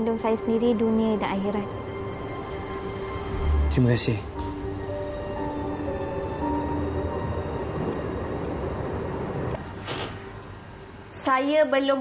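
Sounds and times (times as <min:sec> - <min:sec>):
soft music of held notes: 0:00.0 - 0:12.0.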